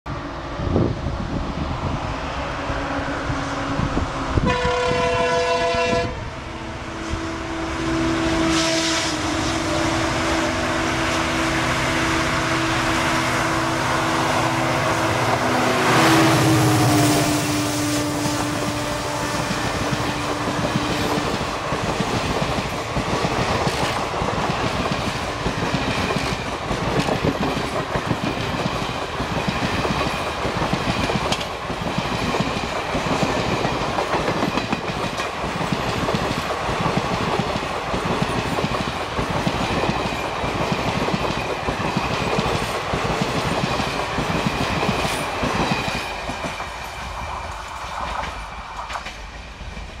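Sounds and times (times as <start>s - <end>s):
train wheels clattering over rails: 15.2s - 50.0s.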